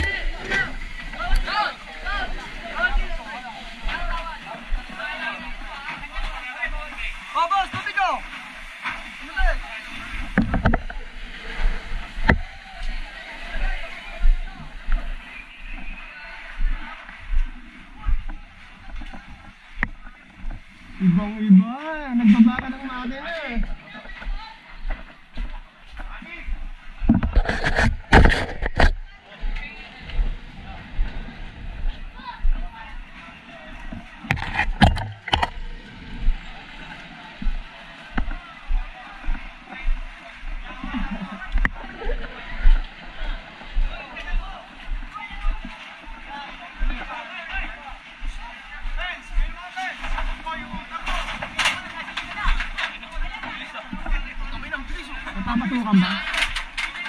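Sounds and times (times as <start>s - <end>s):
indistinct voices: 0.0s - 49.2s.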